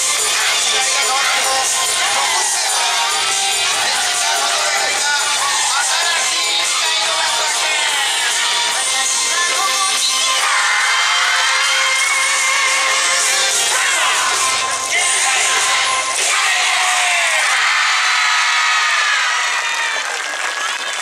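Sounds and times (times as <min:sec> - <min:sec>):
dance music: 0:00.0 - 0:20.1
many voices shouting together: 0:00.2 - 0:08.7, 0:10.4 - 0:21.0.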